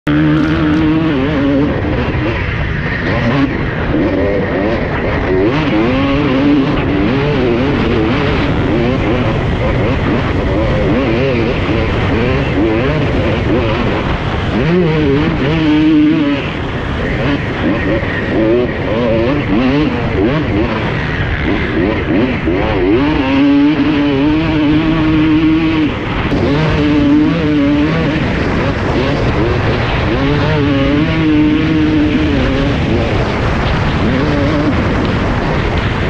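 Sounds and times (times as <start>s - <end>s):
motocross engine revving: 0.0s - 36.0s.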